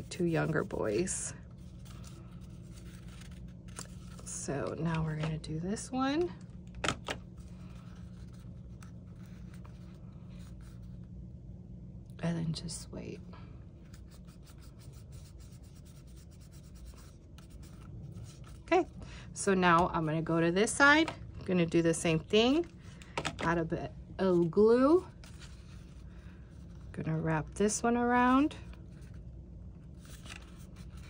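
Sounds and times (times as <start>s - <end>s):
steady low hum: 0.0s - 31.0s
paper crinkling and rubbing: 0.1s - 4.8s, 7.4s - 11.0s, 13.8s - 18.8s, 24.9s - 26.9s, 29.9s - 31.0s
paper rustling: 1.6s - 4.9s, 30.0s - 31.0s.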